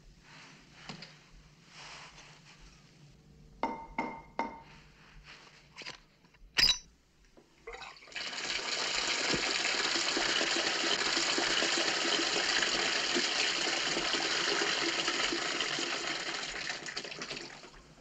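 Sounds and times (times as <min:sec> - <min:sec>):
water gushing from tap into tub: 0:07.7 - 0:18.0.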